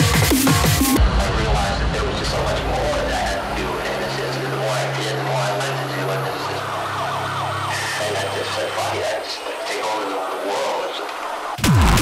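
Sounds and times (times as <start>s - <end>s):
hardcore electronic music: 0.0s - 12.0s
falling synth glides: 1.0s - 9.6s.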